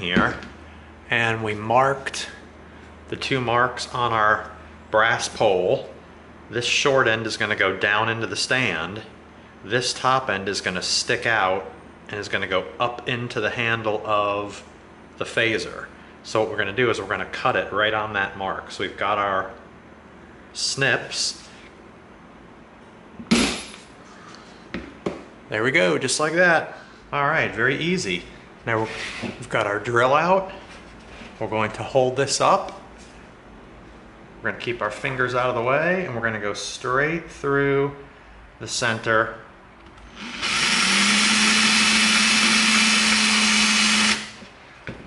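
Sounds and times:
power drill boring through foam: 0:40.1 - 0:44.4.

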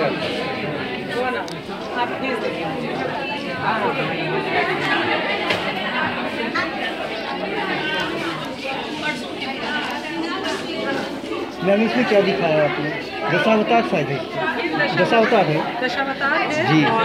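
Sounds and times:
crowd chatter echoing in hall: 0:00.0 - 0:17.0.

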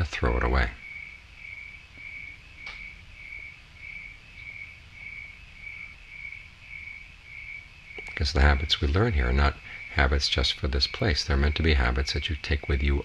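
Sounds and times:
cricket chirping: 0:00.0 - 0:13.0
low background hum: 0:00.0 - 0:13.0
faint click: 0:02.6 - 0:02.8.

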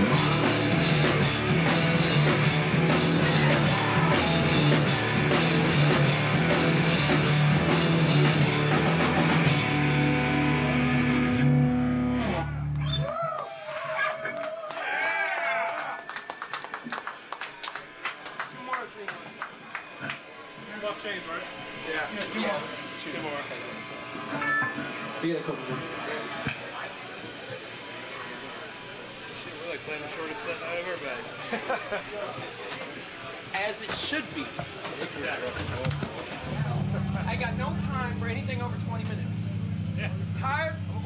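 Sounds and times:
crowd chatter: 0:00.0 - 0:12.7, 0:16.8 - 0:41.0
low amplified droning note: 0:00.0 - 0:12.8, 0:36.5 - 0:41.0
audience clapping: 0:12.7 - 0:20.4.

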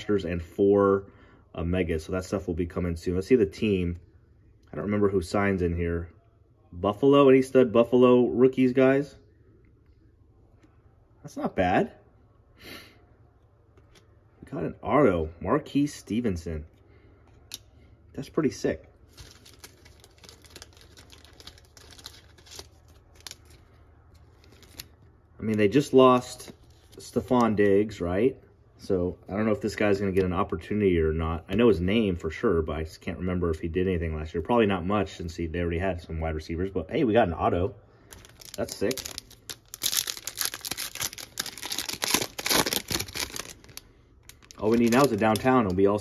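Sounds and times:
plastic card sleeve rustling: 0:19.0 - 0:25.8, 0:26.5 - 0:27.7, 0:38.1 - 0:45.9
foil wrapper tearing and crinkling: 0:19.1 - 0:25.0, 0:38.1 - 0:45.8.

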